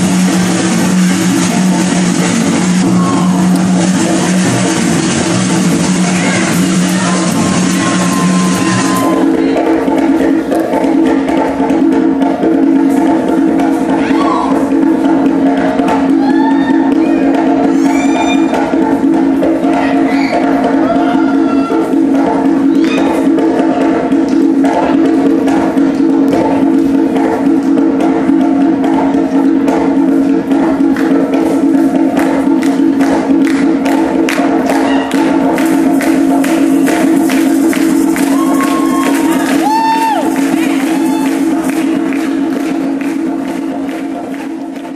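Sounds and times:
crowd voices: 0:00.0 - 0:11.3
hand drumming on a conga: 0:00.0 - 0:44.9
samba music: 0:00.0 - 0:44.9.

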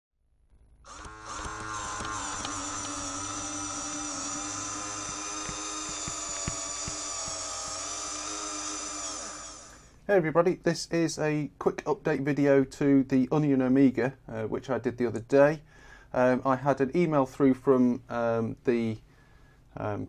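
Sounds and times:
whirring drone: 0:00.9 - 0:09.9.

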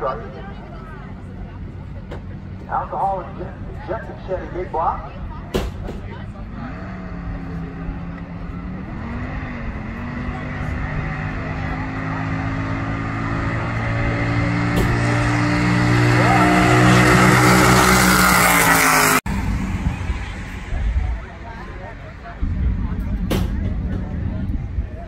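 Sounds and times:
drag car engine at high revs: 0:06.1 - 0:20.8.

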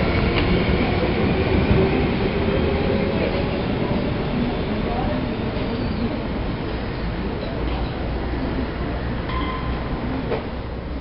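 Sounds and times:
electric train rumbling: 0:00.0 - 0:11.0.

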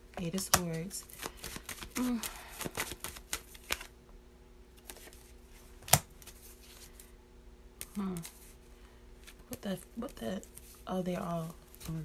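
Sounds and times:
cards clicking and snapping: 0:00.3 - 0:03.9.

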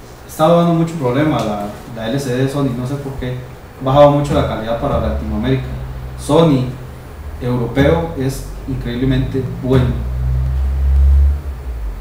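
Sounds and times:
loud low rumble: 0:03.2 - 0:12.0.

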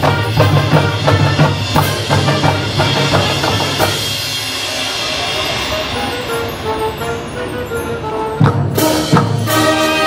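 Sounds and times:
brass band playing: 0:00.0 - 0:10.0
marching drum strokes: 0:00.0 - 0:10.0.

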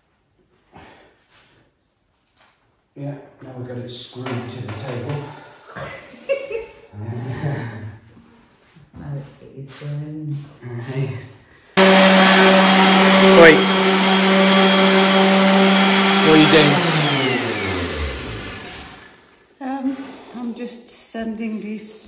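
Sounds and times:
random orbit sander running: 0:11.8 - 0:19.4.

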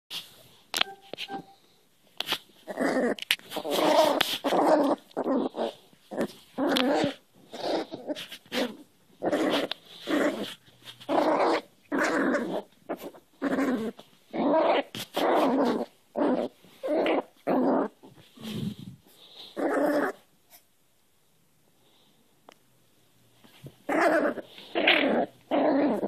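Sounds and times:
puppy play-growling: 0:02.6 - 0:20.6, 0:23.5 - 0:26.0.

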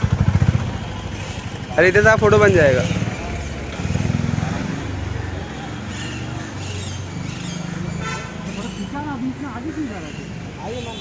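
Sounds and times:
vehicle engine idling: 0:00.0 - 0:04.2.

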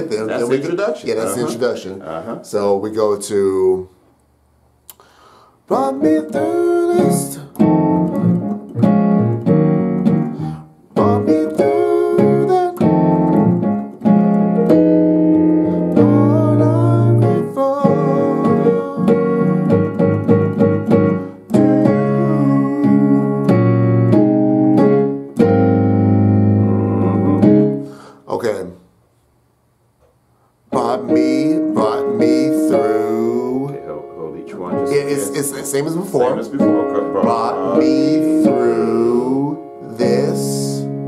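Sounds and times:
digital piano gospel chords: 0:00.0 - 0:03.8, 0:05.0 - 0:28.6, 0:30.6 - 0:41.0.

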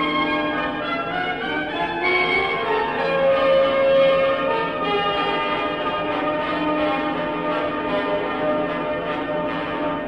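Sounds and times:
piano and orchestra chords: 0:00.0 - 0:10.0.

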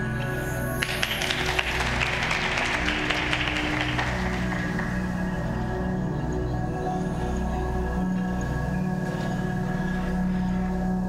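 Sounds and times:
stage music: 0:00.0 - 0:09.6
audience applauding: 0:00.7 - 0:05.9.

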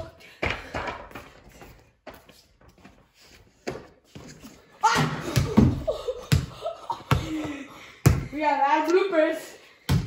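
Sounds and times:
basketball bouncing on concrete: 0:05.2 - 0:08.5.

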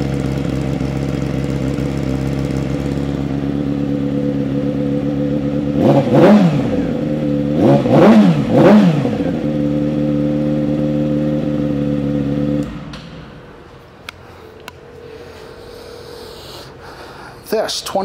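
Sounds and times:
motorcycle throttle blips: 0:00.0 - 0:15.1
motorcycle engine idling: 0:00.0 - 0:15.7.

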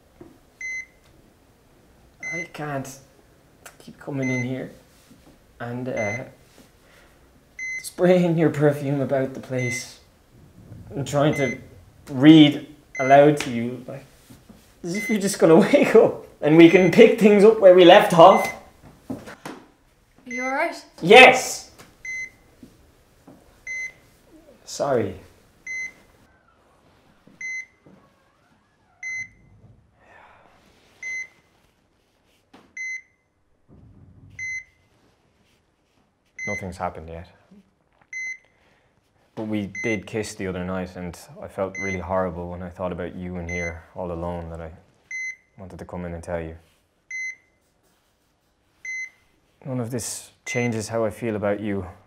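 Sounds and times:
heart monitor beeping: 0:00.6 - 0:01.1, 0:02.2 - 0:02.5, 0:04.2 - 0:04.5, 0:05.9 - 0:06.3, 0:07.6 - 0:07.9, 0:09.6 - 0:13.5, 0:18.2 - 0:18.7, 0:22.0 - 0:22.5, 0:23.6 - 0:24.2, 0:25.6 - 0:29.8, 0:31.0 - 0:31.5, 0:32.7 - 0:34.9, 0:36.4 - 0:36.7, 0:38.0 - 0:38.5, 0:39.7 - 0:40.1, 0:41.7 - 0:42.1, 0:45.1 - 0:45.6, 0:47.1 - 0:47.6, 0:48.8 - 0:49.2.

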